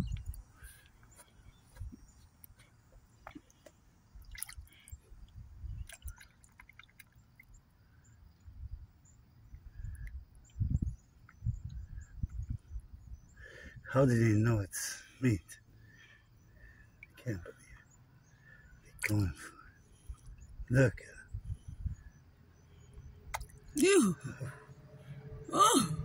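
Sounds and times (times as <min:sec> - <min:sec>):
small splashes and drips: 0:02.4 - 0:07.6, 0:16.0 - 0:17.8, 0:18.4 - 0:20.3, 0:23.3 - 0:23.9.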